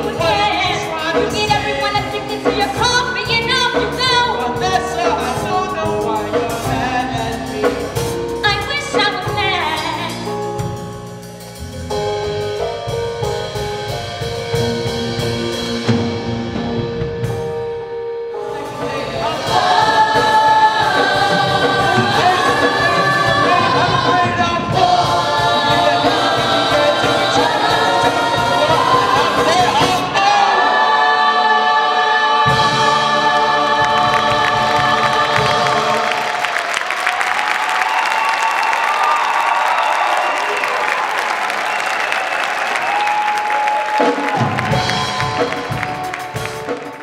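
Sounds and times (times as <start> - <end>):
chorus singing with accompaniment: 18.4 - 37.4
audience applause and cheering: 32.5 - 47.0.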